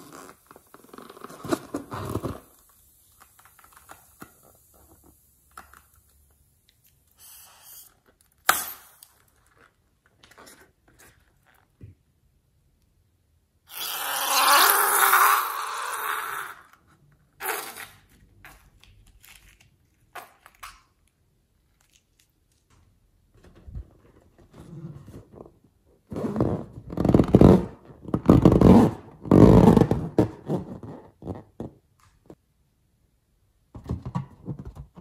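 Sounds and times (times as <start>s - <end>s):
hands rubbing latex balloon: 0.0s - 3.9s, 24.4s - 31.8s.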